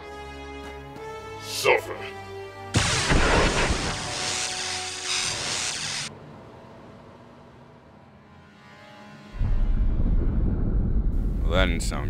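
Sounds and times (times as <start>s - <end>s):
deep rumble sound effect: 9.4s - 12.0s.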